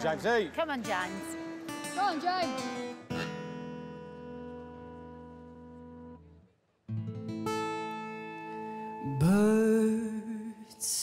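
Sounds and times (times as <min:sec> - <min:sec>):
acoustic guitar chords: 0:01.0 - 0:11.0.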